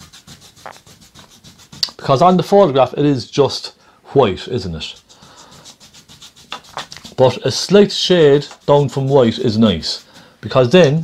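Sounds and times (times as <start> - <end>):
brush scrubbing paint on canvas: 0.0 - 3.0, 4.2 - 11.0.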